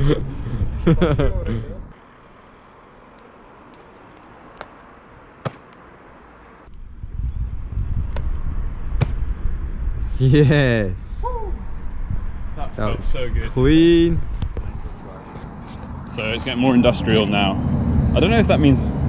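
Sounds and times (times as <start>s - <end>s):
man laughing: 0.0s - 1.9s
steady low rumble outdoors: 0.0s - 19.0s.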